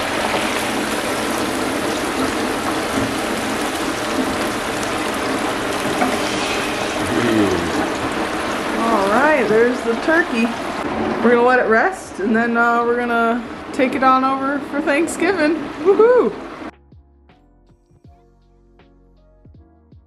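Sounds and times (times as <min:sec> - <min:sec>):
oil sizzling in a fryer: 0:00.0 - 0:12.0
person speaking: 0:07.0 - 0:07.9.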